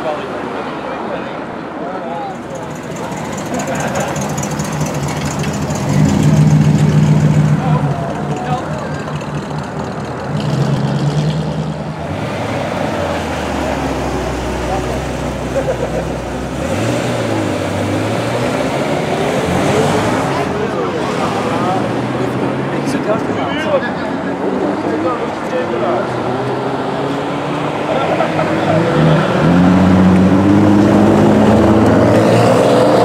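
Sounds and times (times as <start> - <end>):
people talking: 0.0 - 9.7, 12.8 - 16.7, 17.8 - 27.1, 27.7 - 29.6
cars pulling away: 2.3 - 33.0
car engine droning and revving: 2.4 - 33.0.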